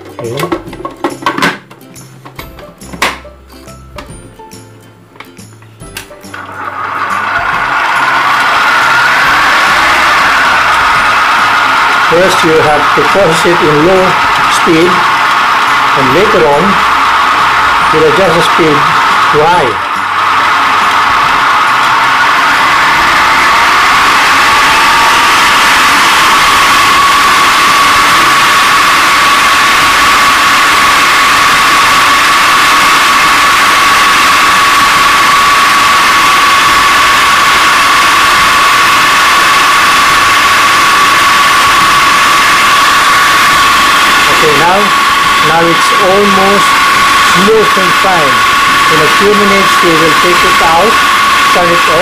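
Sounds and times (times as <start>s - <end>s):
food processor motor whine: 5.8s - 52.0s.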